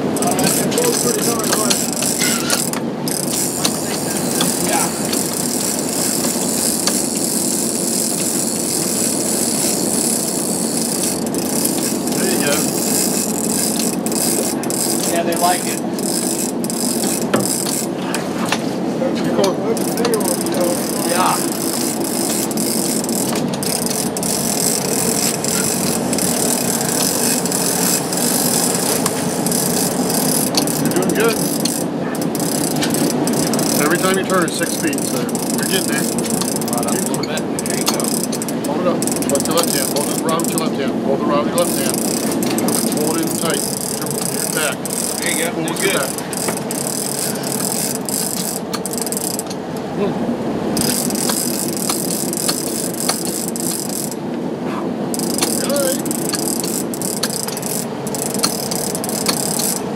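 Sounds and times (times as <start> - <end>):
boat and wind noise: 0.0 - 59.9
fishing reel clicking and ratcheting: 0.1 - 18.0, 19.8 - 40.8, 41.6 - 49.5, 50.8 - 54.2, 55.1 - 59.9.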